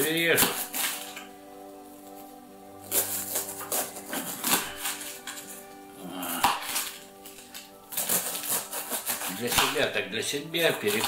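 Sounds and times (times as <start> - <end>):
background music with held tones: 0.0 - 11.0
knife cutting cabbage on wooden board: 2.8 - 5.6, 6.3 - 9.8, 10.8 - 11.0.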